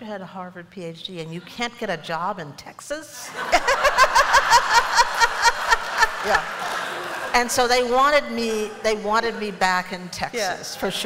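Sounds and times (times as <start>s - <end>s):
audience laughing: 3.3s - 7.5s.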